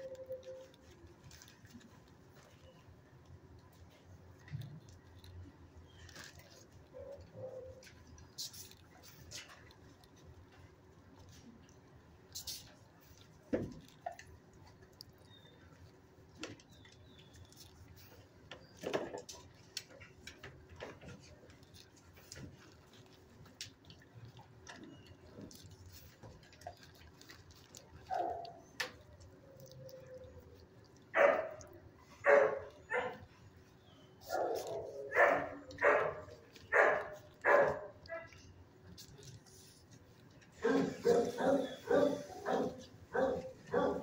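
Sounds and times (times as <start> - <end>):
dog barking: 31.2 - 31.6, 32.2 - 33.3, 34.2 - 38.3, 40.6 - 44.0.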